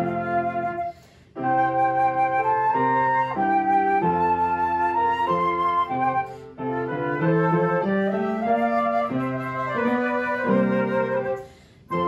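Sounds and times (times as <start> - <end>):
flutes playing: 0.0 - 12.0
upright piano: 0.0 - 12.0.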